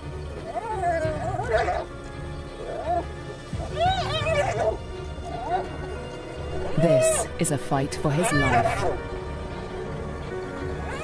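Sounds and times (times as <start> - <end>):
low background music: 0.0 - 11.0
hyenas squealing: 0.3 - 7.3, 8.1 - 9.1, 10.6 - 11.0.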